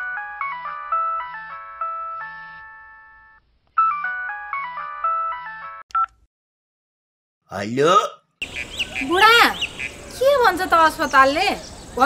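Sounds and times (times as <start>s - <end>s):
mobile phone ringtone melody: 0.0s - 5.8s.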